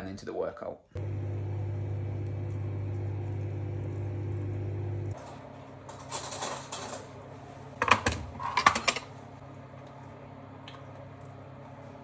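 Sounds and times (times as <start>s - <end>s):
electrical hum: 1.0s - 12.0s.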